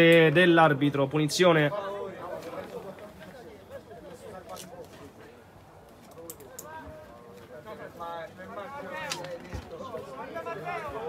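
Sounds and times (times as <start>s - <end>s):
players calling and shouting: 0.0s - 11.0s.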